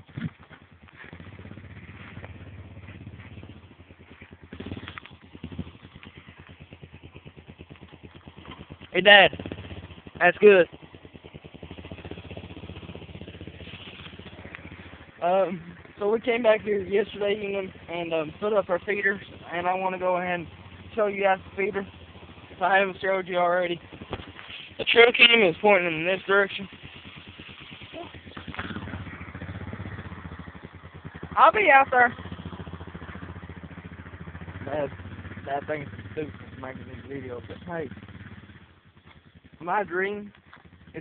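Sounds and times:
engine running with rapid putter: 0.0 - 41.0.

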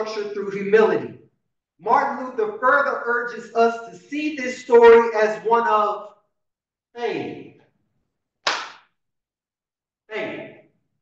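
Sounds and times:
sharp smack: 8.4 - 8.9.

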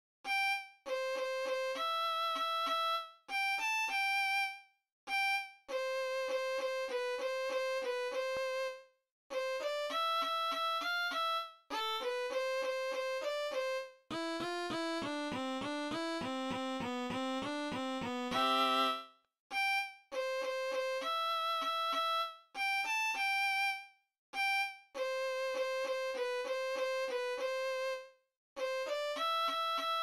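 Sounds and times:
electric violin melody: 0.3 - 23.8, 24.4 - 30.0.

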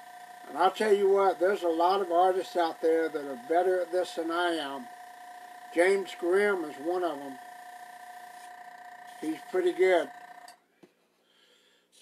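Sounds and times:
machine hum: 0.0 - 10.6.

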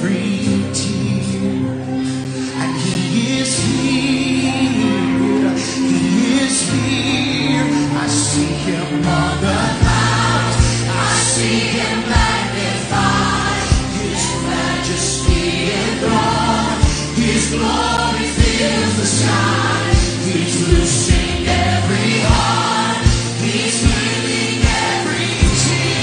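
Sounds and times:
man singing lead: 0.0 - 26.0
backing choir singing: 2.4 - 26.0.

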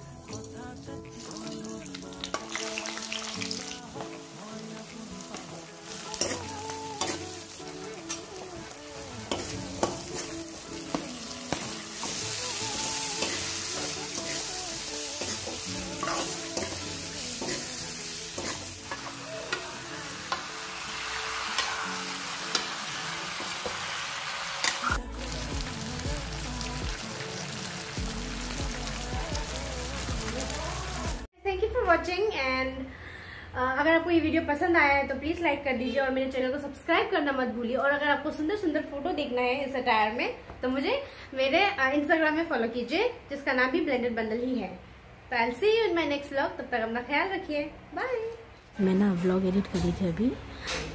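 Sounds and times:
food sizzling in hot oil: 0.0 - 31.3
soft music: 0.0 - 32.2, 48.0 - 50.9.

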